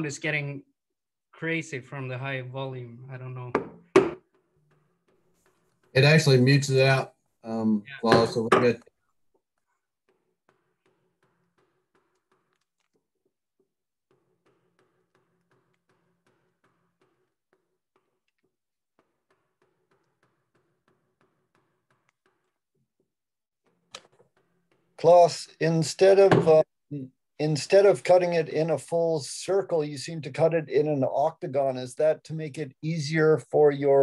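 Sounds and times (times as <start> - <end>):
gouge clicking on wood: 9.9 - 22.6.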